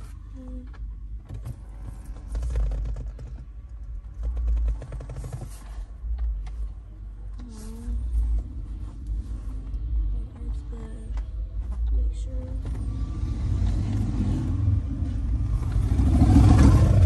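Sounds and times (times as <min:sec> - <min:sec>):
low uneven rumble: 0:00.0 - 0:17.0.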